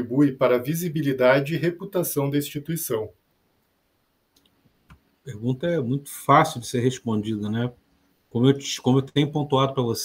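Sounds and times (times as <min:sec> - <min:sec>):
person speaking: 0:00.0 - 0:03.2, 0:04.9 - 0:10.0.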